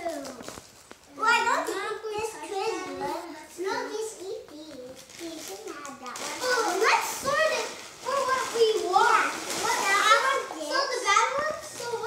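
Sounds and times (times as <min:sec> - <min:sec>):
young children talking: 0:00.0 - 0:00.5, 0:01.1 - 0:12.0.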